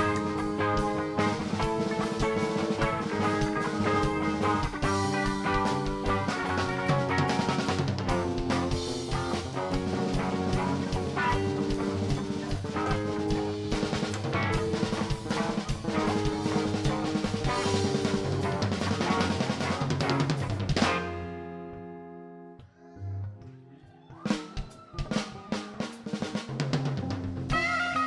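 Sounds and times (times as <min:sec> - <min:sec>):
busy drumming: 0:00.0 - 0:21.5, 0:24.2 - 0:28.0
live rock band instrumental: 0:00.0 - 0:23.4, 0:24.2 - 0:28.0.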